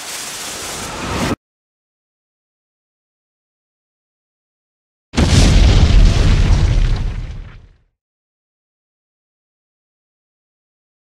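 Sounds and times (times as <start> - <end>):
explosion boom and rumble: 5.2 - 7.9.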